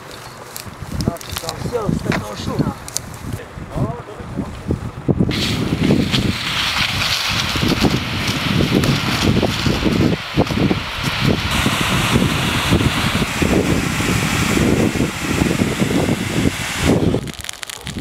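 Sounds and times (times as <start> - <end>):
wind buffeting microphone: 0.6 - 18.0
water spraying from fire hose: 5.3 - 18.0.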